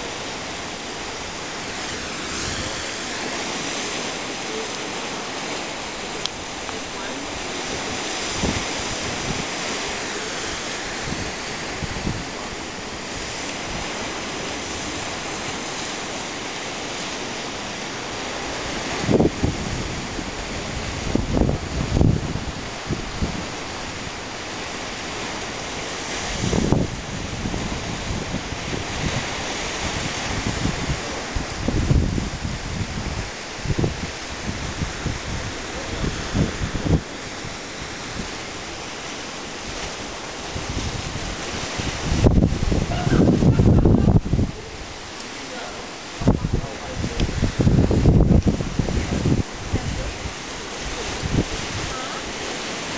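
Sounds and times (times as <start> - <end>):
surf breaking against rocks: 0.0 - 52.9
wind buffeting microphone: 0.0 - 52.9.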